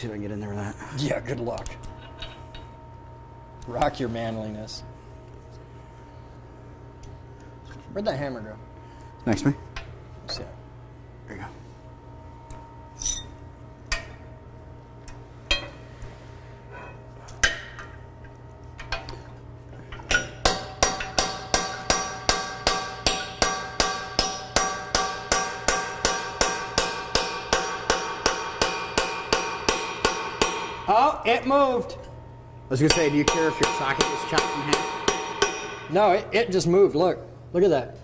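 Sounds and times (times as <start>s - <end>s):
hammer striking metal: 20.1s - 31.0s, 32.7s - 36.1s.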